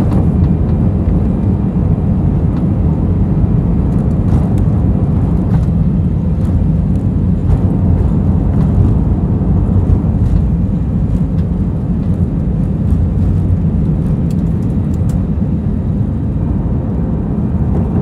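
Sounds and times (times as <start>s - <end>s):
jet engines at takeoff power: 0.0s - 18.0s
runway rumble: 0.0s - 18.0s.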